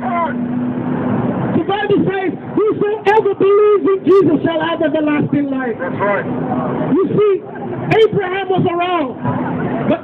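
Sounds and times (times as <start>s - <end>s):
street noise: 0.0s - 10.0s
man preaching through microphone: 1.5s - 6.0s, 6.9s - 9.2s.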